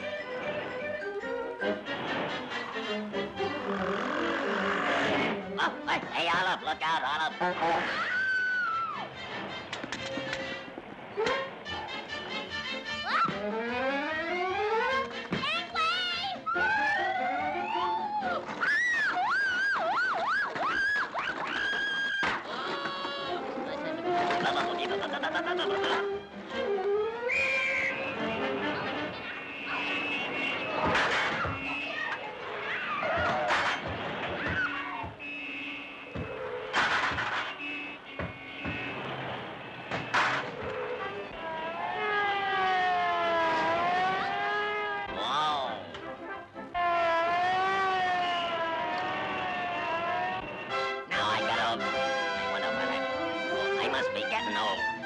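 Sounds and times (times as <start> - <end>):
swooping cartoon music: 11.3 - 30.0
cartoon siren-like whistle tone: 16.5 - 22.2, 27.2 - 28.2, 46.8 - 50.8
car horns honking: 27.2 - 42.5, 45.8 - 55.0.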